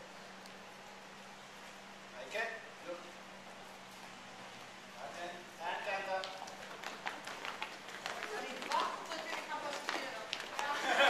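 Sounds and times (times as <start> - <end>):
footsteps on concrete: 6.2 - 11.0.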